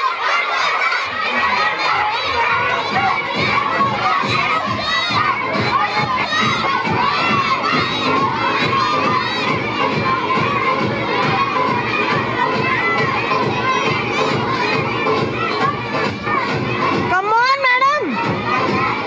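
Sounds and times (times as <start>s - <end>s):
children shouting and cheering: 0.0s - 19.0s.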